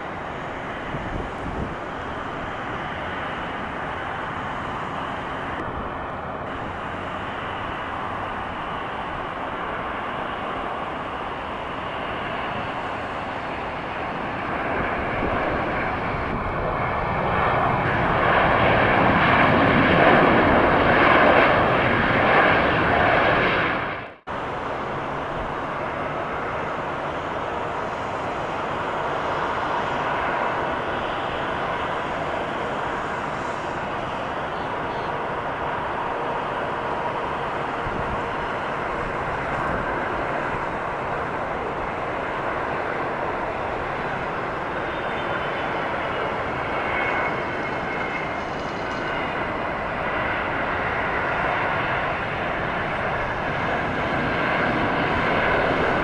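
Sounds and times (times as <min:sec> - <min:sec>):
jet engine on approach: 0:00.0 - 0:56.0
jet engine reverse thrust: 0:00.0 - 0:56.0.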